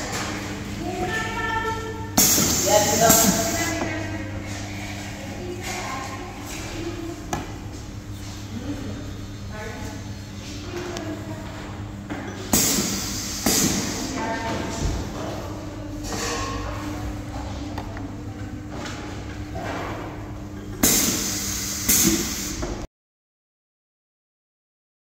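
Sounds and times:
steady low machine hum: 0.0s - 22.9s
compressed air hissing from valves: 2.2s - 3.8s, 12.5s - 14.2s, 20.8s - 22.8s.

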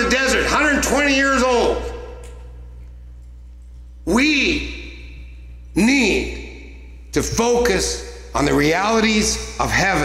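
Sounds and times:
echo of speech: 0.0s - 2.7s, 3.9s - 10.0s
steady low hum: 0.0s - 10.0s.

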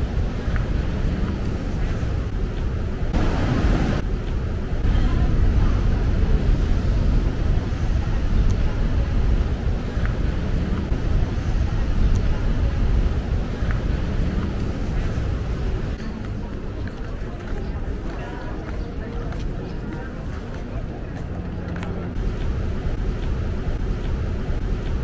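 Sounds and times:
low rumble: 0.0s - 16.8s, 21.2s - 25.0s.

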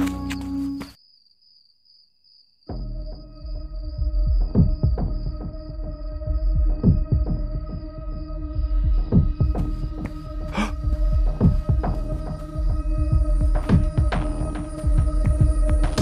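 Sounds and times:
deep thuds: 8.7s - 12.1s.

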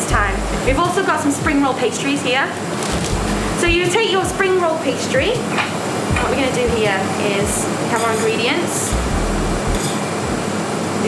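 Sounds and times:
ventilation fan running: 0.0s - 11.0s
low rumble: 3.1s - 3.7s, 9.0s - 9.8s.

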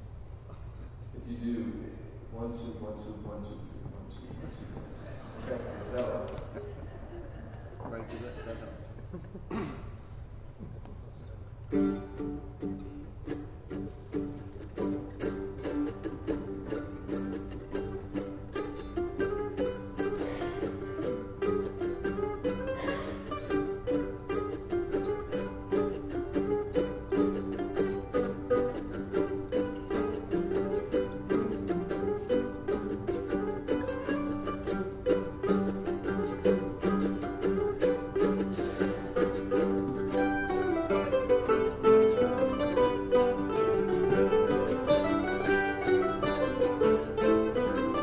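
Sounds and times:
mandolin orchestra playing fast: 11.6s - 48.0s.

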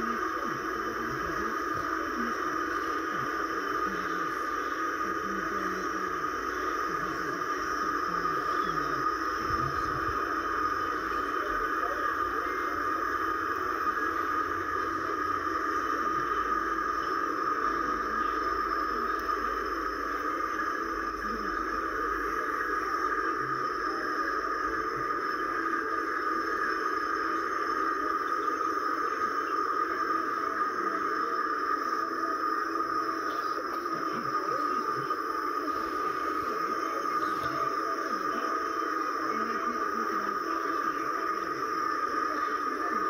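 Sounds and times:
layered video soundtracks droning: 0.0s - 43.0s.

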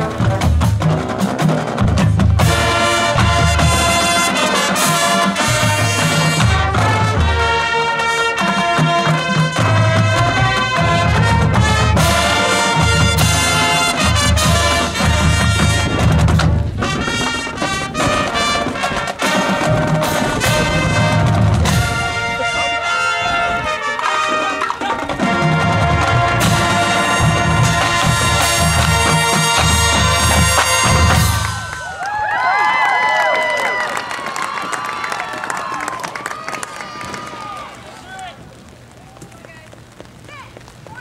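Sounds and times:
drumline steady low beat: 0.0s - 22.9s, 23.8s - 31.9s
trombones: 0.0s - 31.8s
trumpets: 0.0s - 32.1s.

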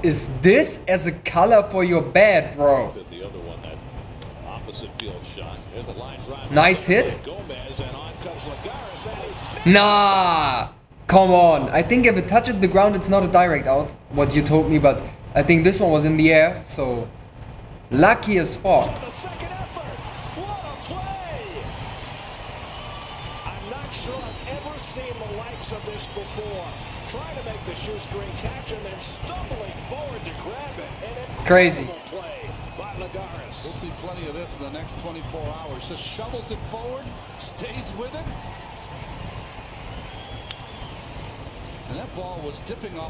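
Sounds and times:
commentator talking: 0.0s - 3.8s, 4.5s - 17.1s, 17.9s - 19.8s, 23.5s - 38.2s
stadium crowd noise: 0.0s - 16.1s, 17.9s - 43.0s.

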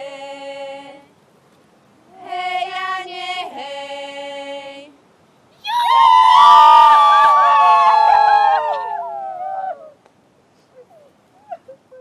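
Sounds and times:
women shouting together: 5.6s - 9.9s.

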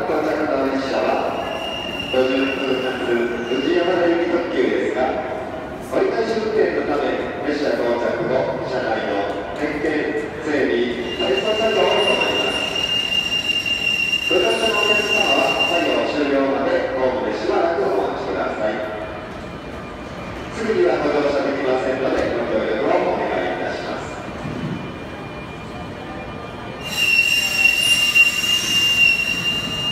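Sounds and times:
high-pitched brake squeal: 1.1s - 4.2s, 10.9s - 16.3s, 26.7s - 29.9s
electric train pulling in: 10.8s - 16.3s, 24.1s - 29.9s.

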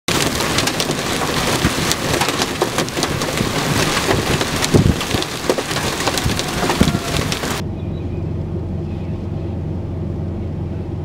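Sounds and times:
heavy rain on a vehicle: 0.0s - 7.6s.

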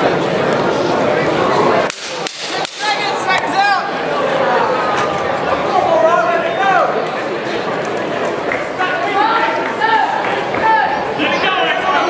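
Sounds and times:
hall background noise: 0.0s - 12.0s.

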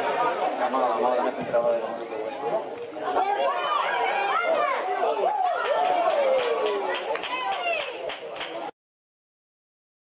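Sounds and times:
spectators chattering: 0.0s - 8.7s.

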